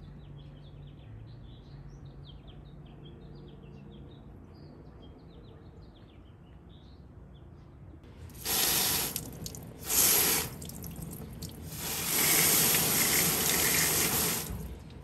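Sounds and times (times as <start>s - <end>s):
hose nozzle spraying water: 8.3s - 14.9s.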